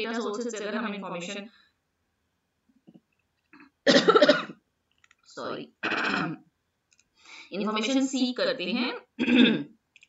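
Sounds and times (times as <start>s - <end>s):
woman coughing: 3.9s - 4.6s, 5.8s - 6.4s, 9.2s - 9.8s.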